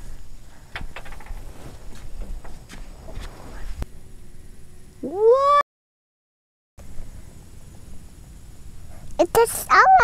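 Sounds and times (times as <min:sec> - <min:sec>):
wind rumbling on microphone: 0:00.0 - 0:03.9.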